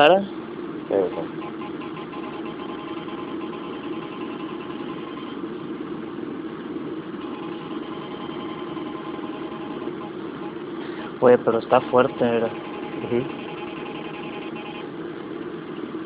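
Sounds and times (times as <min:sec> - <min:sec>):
electronic meter buzzing: 0:01.2 - 0:05.5, 0:07.0 - 0:10.8, 0:11.7 - 0:15.0.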